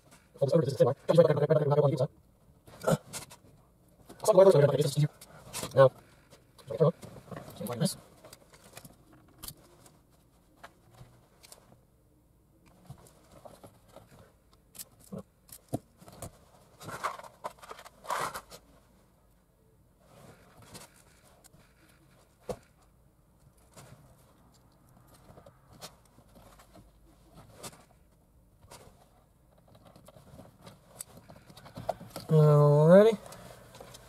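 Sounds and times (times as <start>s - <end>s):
wires and plastic connectors scraping: 2.6s - 11.8s, 12.6s - 18.8s, 20.0s - 34.0s.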